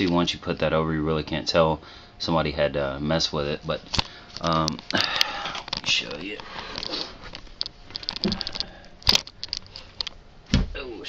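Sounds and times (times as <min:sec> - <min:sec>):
handling clicks and knocks: 0:05.6 - 0:10.2.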